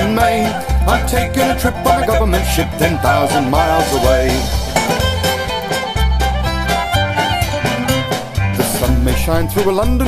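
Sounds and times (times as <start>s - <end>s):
bass line: 0.0s - 10.0s
strummed rhythm: 0.0s - 10.0s
fiddle playing a tune: 0.7s - 8.6s.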